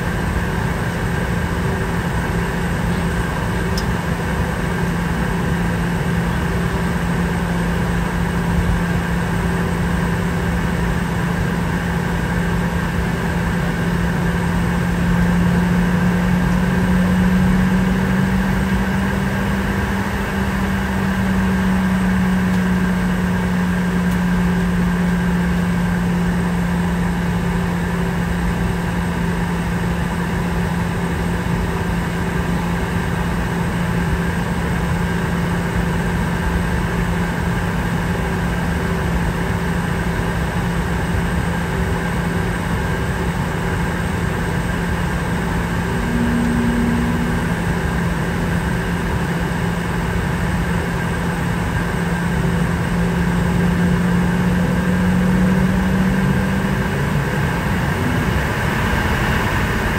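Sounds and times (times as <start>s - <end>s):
jet engine drone: 0.0s - 59.9s
cabin air noise: 43.2s - 53.8s.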